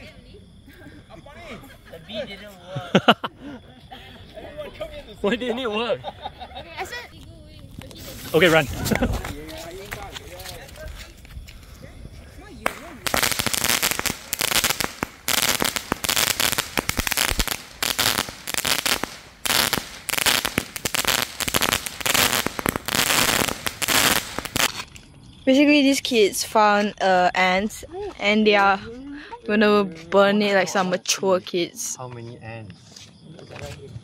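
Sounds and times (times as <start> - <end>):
firework crackling shots: 12.6 - 24.9.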